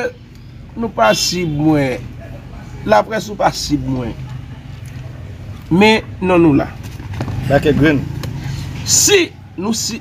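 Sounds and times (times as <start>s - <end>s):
man speaking: 0.0s - 4.2s.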